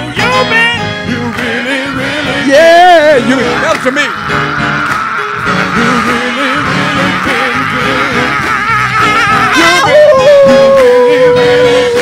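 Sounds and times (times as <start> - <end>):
keyboard accompaniment: 0.0 - 12.0
men's choir singing: 0.0 - 12.0.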